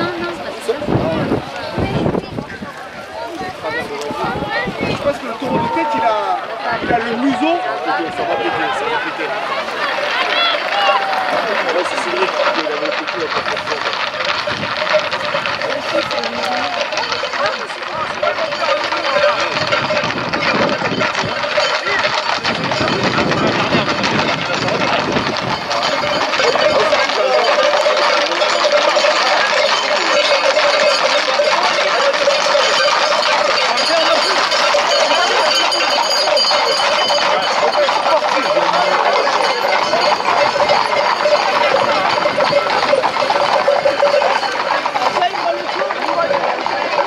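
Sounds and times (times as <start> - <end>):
crowd noise: 0.0 - 47.0
horse hooves clattering on road: 0.0 - 47.0
small engine running: 10.6 - 47.0.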